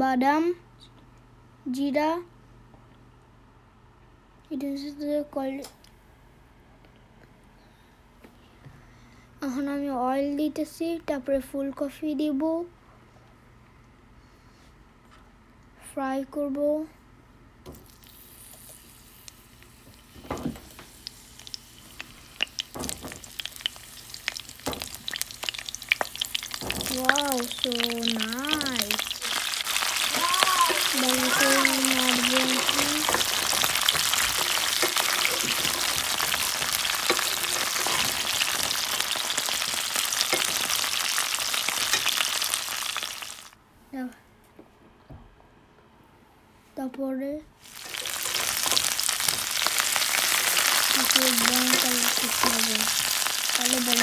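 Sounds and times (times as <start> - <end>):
vegetables frying in hot oil: 17.8 - 43.6, 47.6 - 54.0.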